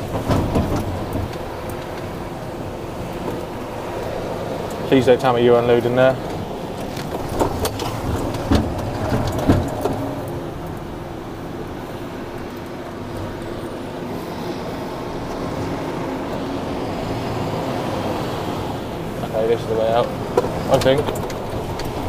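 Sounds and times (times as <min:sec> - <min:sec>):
lorry diesel engine running: 0:00.0 - 0:22.0.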